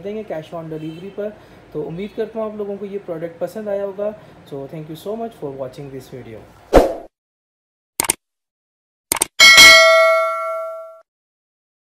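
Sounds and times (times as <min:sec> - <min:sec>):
notification bell ding: 0:09.4 - 0:11.0.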